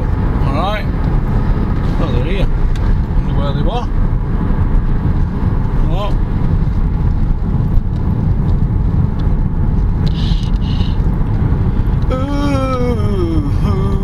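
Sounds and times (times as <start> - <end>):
car road and engine rumble: 0.0 - 14.0
man saying ooh: 12.1 - 14.0
man singing sliding note: 12.1 - 14.0.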